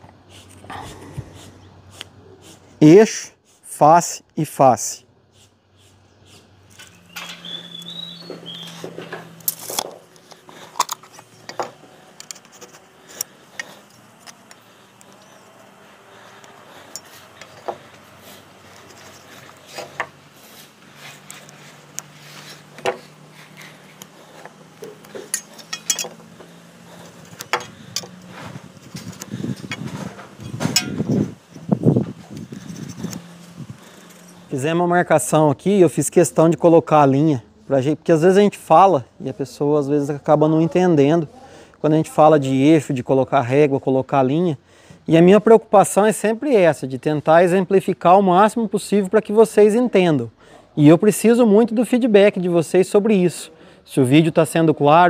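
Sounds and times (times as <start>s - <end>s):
pencil marking: 0.3s - 2.8s, 5.3s - 6.6s
metal tools clinking on wood: 8.4s - 15.4s, 16.8s - 18.1s, 21.2s - 31.6s.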